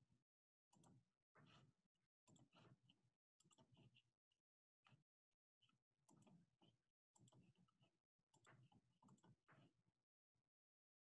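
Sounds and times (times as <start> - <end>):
faint irregular clicking: 0.7 - 4.1, 4.8 - 9.8.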